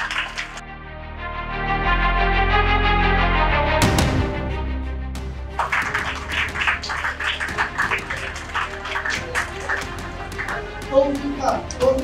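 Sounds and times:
audience hand clapping: 0.0 - 0.6, 5.6 - 10.9
background music: 0.0 - 12.0.

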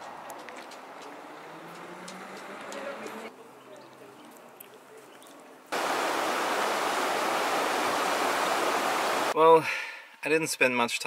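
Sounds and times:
stream rushing over stones: 5.7 - 9.4.

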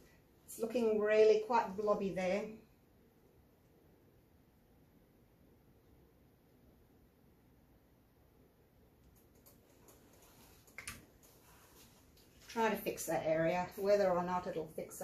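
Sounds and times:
faint clicks: 9.0 - 11.4.

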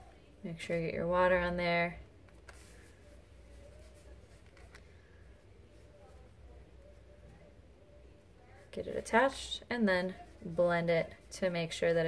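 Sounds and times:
low steady room hum: 0.0 - 12.0.

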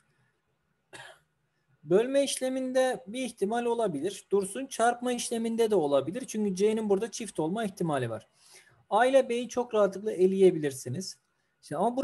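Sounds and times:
person coughing: 0.9 - 1.3.

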